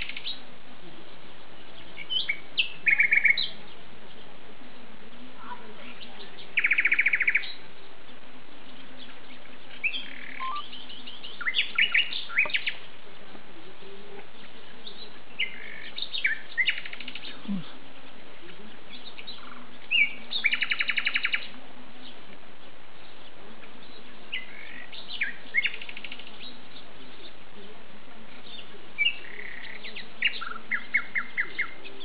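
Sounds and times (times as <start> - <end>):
songbirds singing: 0.0 - 32.0
steady background hiss: 0.0 - 32.0.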